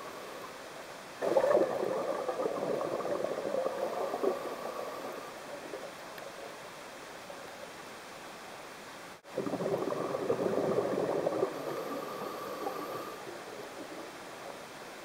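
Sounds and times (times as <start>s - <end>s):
low steady hiss: 0.0s - 15.0s
underwater scuba bubbles: 1.2s - 7.6s, 9.2s - 15.0s.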